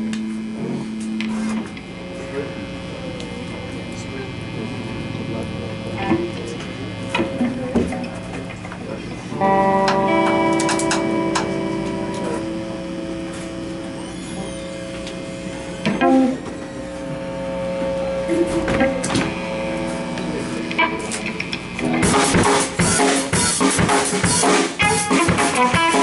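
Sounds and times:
amplifier hum: 0.0 - 26.0
electric guitar plucks and chord: 0.0 - 26.0.

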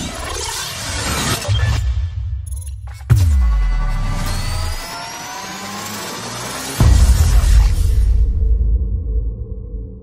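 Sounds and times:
electronic riser tones: 0.0 - 8.0.

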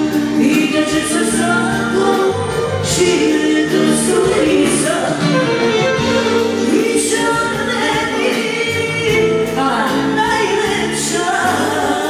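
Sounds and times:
amplified band accompaniment: 0.0 - 12.0
two women singing: 0.0 - 12.0.

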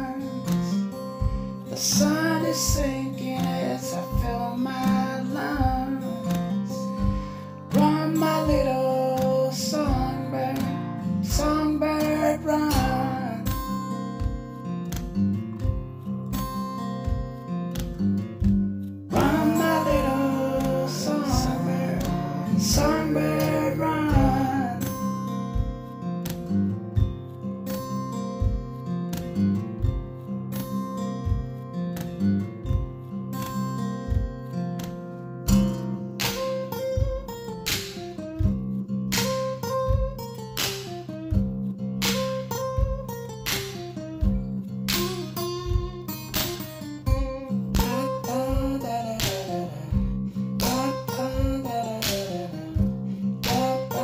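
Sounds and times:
acoustic guitar melody: 0.0 - 54.0
low thump on the beat: 1.2 - 1.7, 12.7 - 33.0, 39.8 - 40.4.

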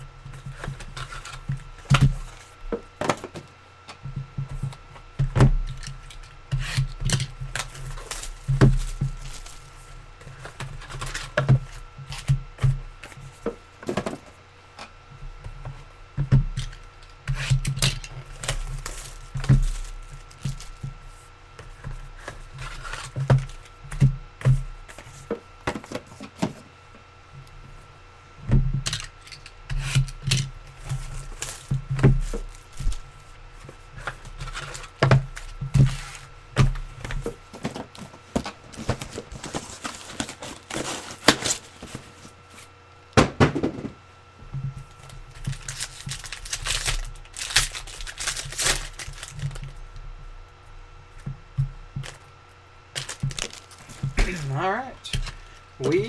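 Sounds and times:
faint electrical hum: 0.0 - 56.0
card packs being opened and handled: 0.3 - 4.0, 5.6 - 14.3, 16.5 - 20.8, 28.8 - 42.8, 44.9 - 49.8, 52.9 - 56.0.

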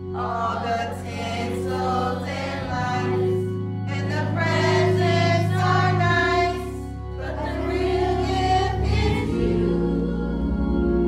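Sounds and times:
choir singing: 0.0 - 11.0
low instrumental chords: 0.0 - 11.0.

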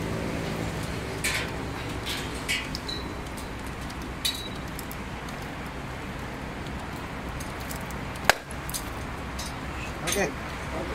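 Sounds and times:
sharp metallic crack: 8.2 - 8.9.

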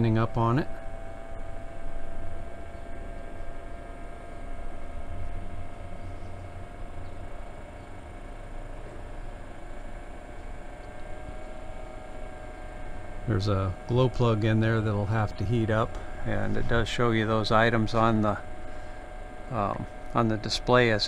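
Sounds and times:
heater fan whining: 0.0 - 21.0.

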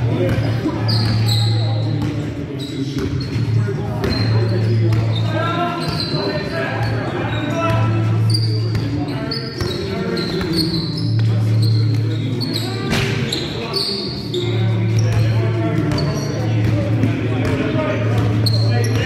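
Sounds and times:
players' voices echoing: 0.0 - 19.0
sneakers squeaking: 0.0 - 19.0.

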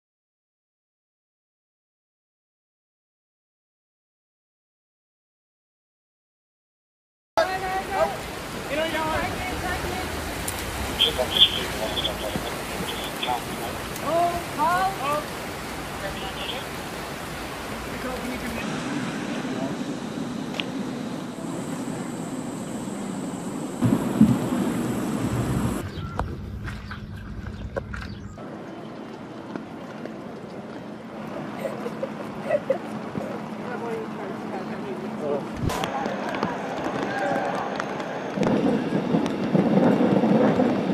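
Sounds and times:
rushing floodwater: 7.4 - 25.8
steady background hiss: 7.4 - 25.8
indistinct voices of passers-by: 7.6 - 16.7, 28.4 - 40.6.

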